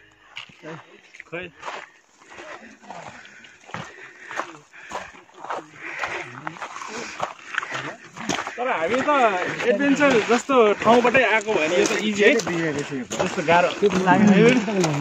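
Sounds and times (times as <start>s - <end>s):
people talking: 0.6s - 1.6s, 5.4s - 15.0s.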